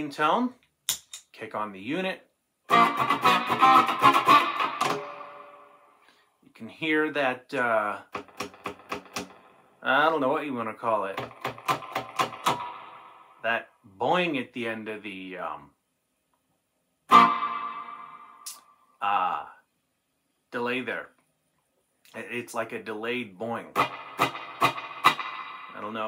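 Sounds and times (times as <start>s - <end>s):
electric guitar strums with reverb: 2.7s - 5.8s, 8.0s - 9.6s, 11.0s - 13.5s, 17.1s - 18.6s, 23.7s - 26.0s.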